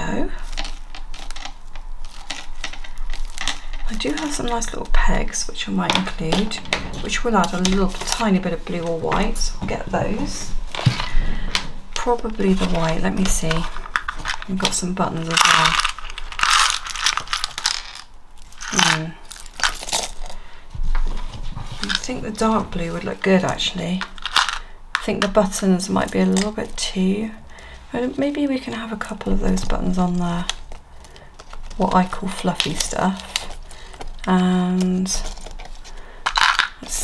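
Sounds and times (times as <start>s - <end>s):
small buttons rattling in plastic box: 0.4s - 4.9s, 12.6s - 20.2s, 24.0s - 25.4s, 29.5s - 37.0s
paper rustling: 29.1s - 37.0s.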